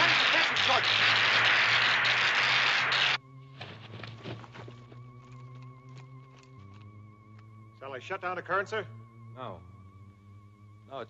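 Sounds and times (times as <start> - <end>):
loud electric crackling: 0.0 - 3.2
wavering electronic tone: 2.0 - 11.0.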